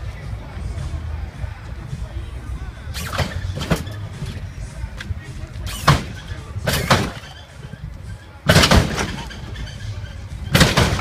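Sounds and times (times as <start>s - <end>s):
suspension bangs: 2.8s - 11.0s.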